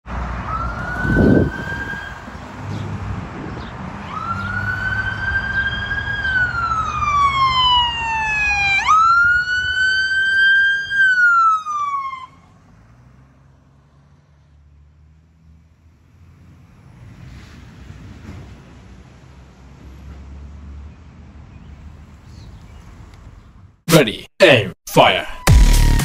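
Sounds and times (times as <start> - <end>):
low traffic rumble: 0.0 - 23.8
ambulance siren wailing: 0.2 - 2.6, 4.0 - 12.6.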